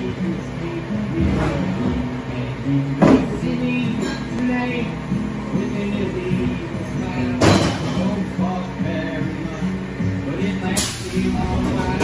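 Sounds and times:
instrumental pop music: 0:00.0 - 0:12.0.

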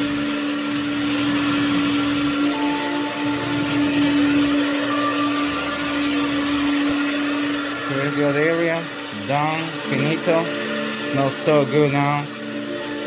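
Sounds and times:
carpet cleaning machine humming: 0:00.0 - 0:13.0
rushing hiss of water extraction: 0:00.0 - 0:13.0.

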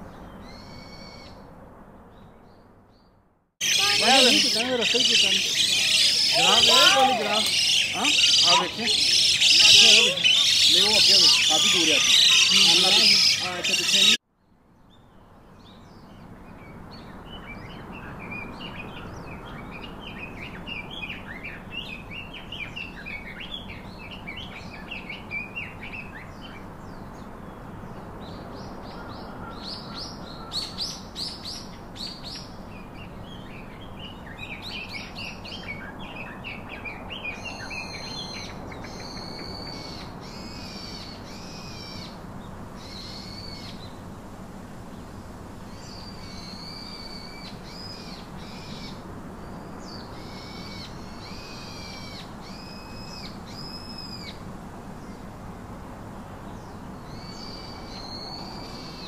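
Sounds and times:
small birds chirping: 0:02.1 - 0:14.2, 0:14.8 - 0:44.1, 0:44.8 - 0:55.3, 0:56.2 - 0:59.0
louder bird calls: 0:03.6 - 0:14.2, 0:28.8 - 0:32.5.

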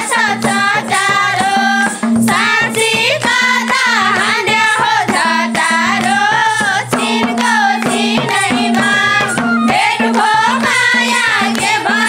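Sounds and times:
women singing folk song: 0:00.0 - 0:12.0
hand drum strokes: 0:04.9 - 0:12.0.

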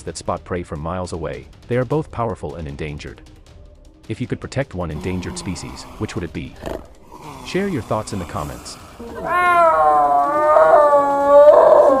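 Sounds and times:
snow leopard crying: 0:05.0 - 0:12.0.

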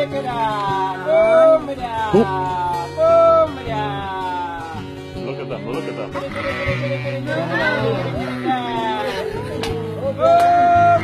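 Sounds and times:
background music: 0:00.0 - 0:11.0
sheep bleating: 0:05.7 - 0:09.5.

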